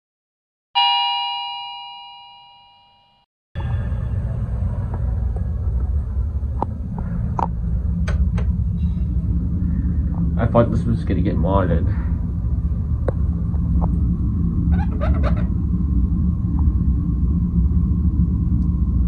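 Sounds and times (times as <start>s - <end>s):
bell-like chime: 0.8s - 3.3s
low rumble of room noise: 3.6s - 19.0s.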